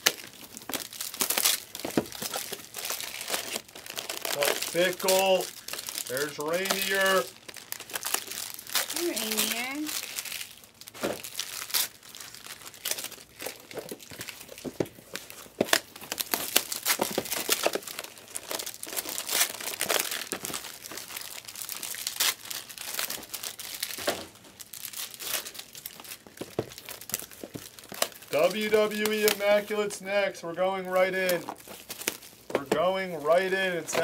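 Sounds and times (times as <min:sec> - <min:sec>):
foil wrappers crinkling: 0:00.0 - 0:34.0.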